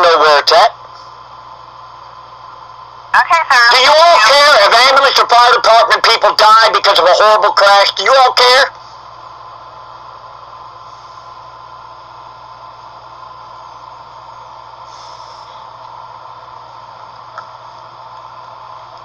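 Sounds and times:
steady hiss with low hum: 0.0s - 19.0s.

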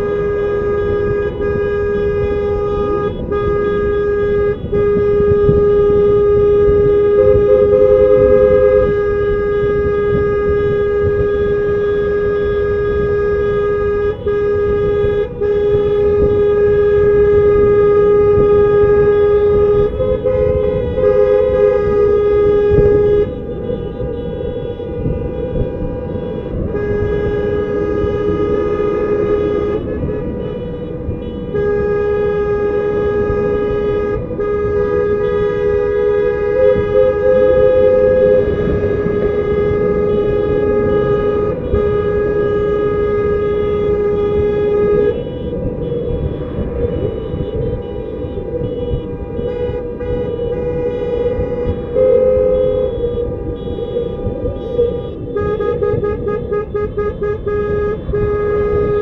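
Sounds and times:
car horns blasting: 0.0s - 59.0s
road and engine rumble: 0.0s - 59.0s.

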